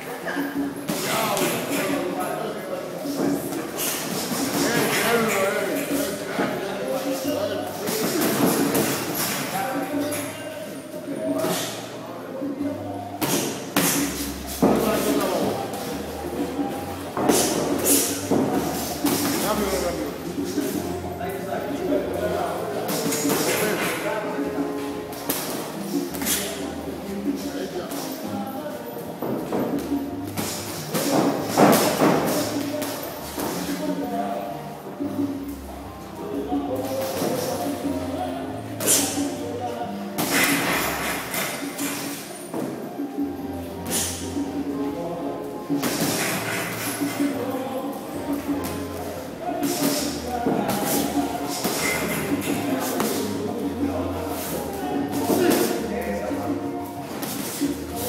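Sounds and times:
indistinct voices talking: 42.8s - 58.0s.

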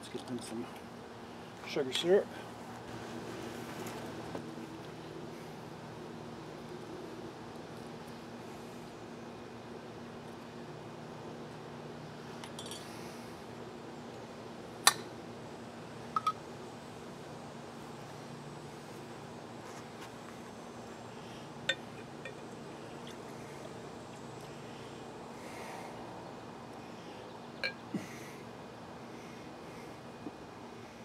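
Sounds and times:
glass jars clinking: 27.6s - 27.8s.

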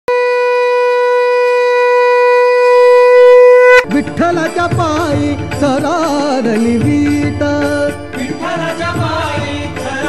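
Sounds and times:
conch shell blown: 0.1s - 3.9s.

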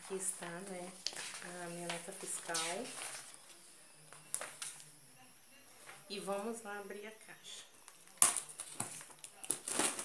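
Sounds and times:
paper sheets being handled: 0.0s - 3.3s.

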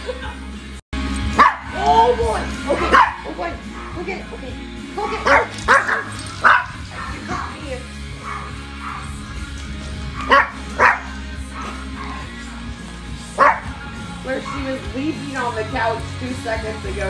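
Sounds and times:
background music: 0.0s - 17.0s
small dog barking: 2.8s - 4.0s, 5.1s - 6.9s, 10.2s - 12.3s, 13.4s - 13.7s.

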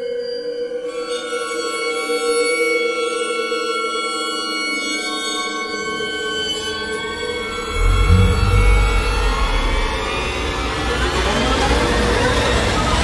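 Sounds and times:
held drone tones: 7.5s - 11.0s
deep rumble: 7.5s - 11.1s
rising hissing wash: 7.6s - 10.6s.

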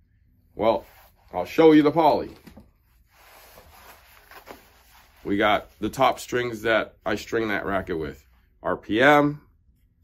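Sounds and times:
rustling of packages: 2.1s - 6.0s.

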